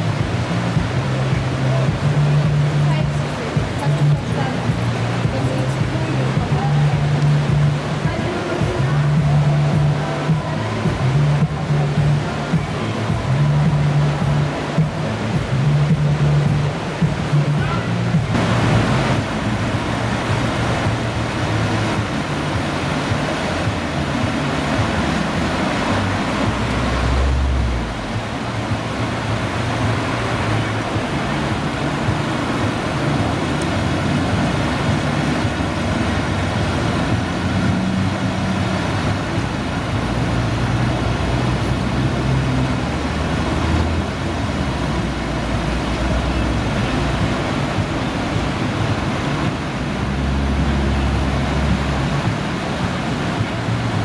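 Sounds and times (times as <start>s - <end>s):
rushing whitewater: 0.0s - 54.0s.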